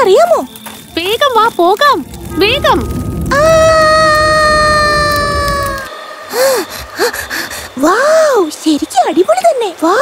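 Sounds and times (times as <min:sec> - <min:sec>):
low rushing whoosh: 0:02.0 - 0:05.9
girl exclaiming: 0:03.3 - 0:05.9
girl screaming: 0:03.3 - 0:05.9.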